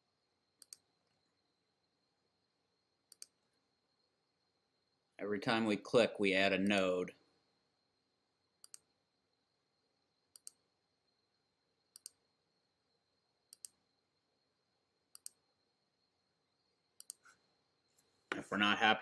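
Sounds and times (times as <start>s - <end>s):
computer mouse clicks: 0.6s - 1.2s, 3.1s - 3.4s, 8.6s - 8.9s, 10.3s - 10.6s, 11.9s - 12.2s, 13.5s - 13.8s, 15.1s - 15.4s, 17.0s - 17.4s.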